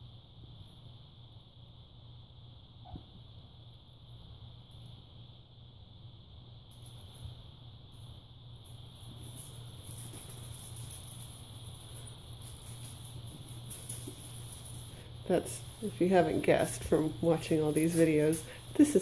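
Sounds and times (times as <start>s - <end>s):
steady low hum: 0.0s - 19.0s
kittens rustling and scratching: 2.8s - 5.2s, 6.7s - 19.0s.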